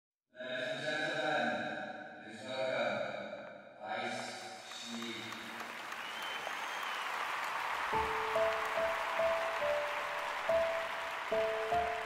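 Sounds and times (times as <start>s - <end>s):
crowd applause: 4.6s - 12.0s
sustained music chords: 8.0s - 12.0s.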